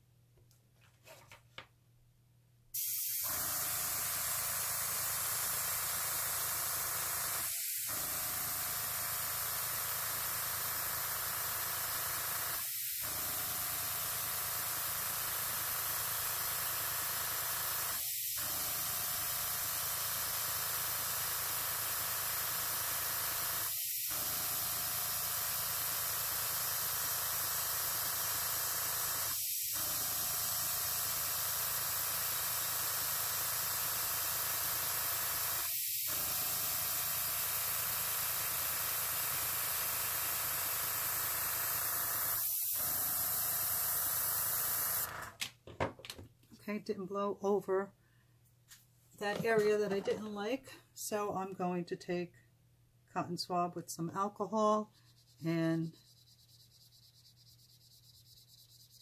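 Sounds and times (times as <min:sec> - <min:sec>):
airbrush hissing air: 0:02.8 - 0:13.2, 0:13.9 - 0:45.1, 0:54.9 - 0:59.0.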